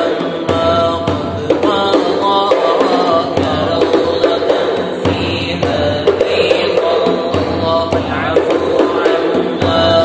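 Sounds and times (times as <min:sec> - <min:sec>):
light percussive beats: 0:00.0 - 0:10.0
men chanting together: 0:01.8 - 0:10.0.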